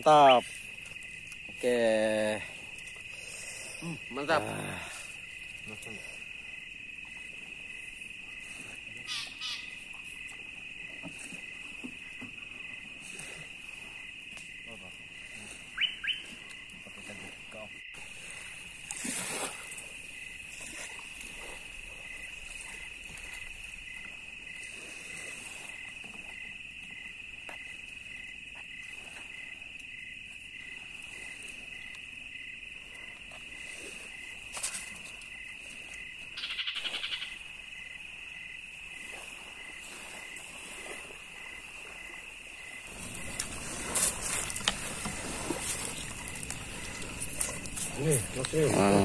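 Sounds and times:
buzzing animal call: 9.0 - 9.8, 36.4 - 37.4
pulsing animal call: 9.0 - 9.9, 36.4 - 37.4
steady high animal trill: 36.4 - 37.4.

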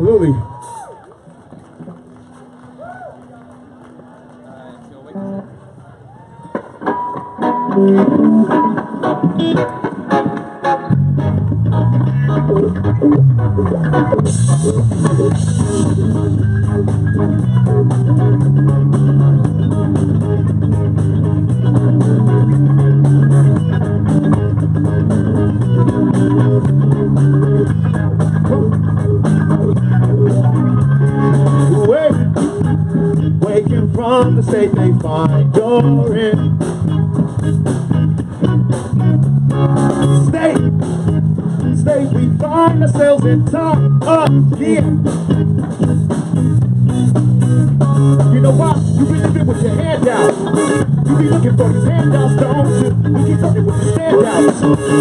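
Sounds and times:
bass guitar: 0.0 - 55.0
electric guitars: 0.0 - 55.0
drum kit with cymbals: 14.2 - 55.0.

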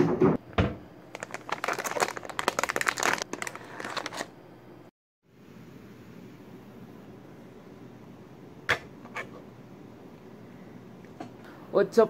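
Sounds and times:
low room hum: 0.6 - 12.0.

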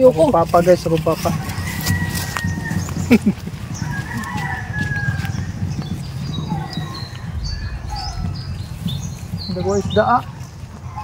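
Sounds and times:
rooster crowing: 1.4 - 3.1, 3.8 - 5.6, 7.2 - 9.2
low rumble: 6.0 - 10.8.

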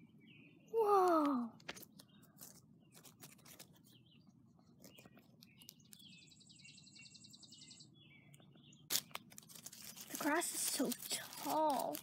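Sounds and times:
birds chirping: 0.0 - 12.0
dry leaves crackling and rustling: 8.9 - 12.0.

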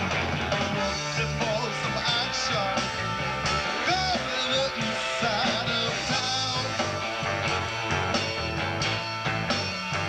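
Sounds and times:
funk band playing: 0.0 - 10.0.

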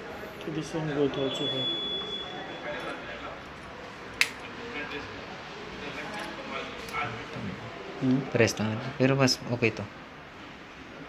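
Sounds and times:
faint background talking: 0.0 - 11.0.

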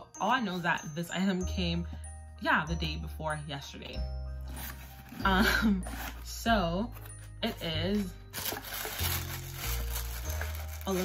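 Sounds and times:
cardboard box and tissue rustling: 4.4 - 11.0.

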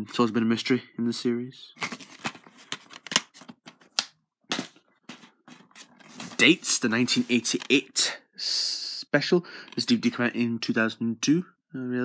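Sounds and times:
plastic cases clicking and knocking: 1.8 - 6.2.

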